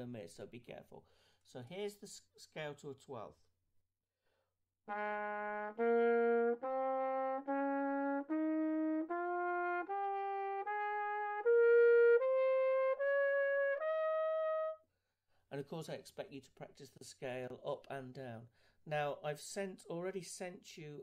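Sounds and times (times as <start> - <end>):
trumpet playing a rising scale: 4.9 - 14.8.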